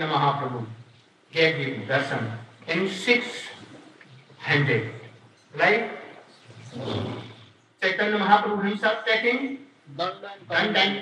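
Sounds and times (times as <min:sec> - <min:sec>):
man speaking: 0:00.0 - 0:03.7, 0:04.4 - 0:06.2, 0:07.8 - 0:11.0.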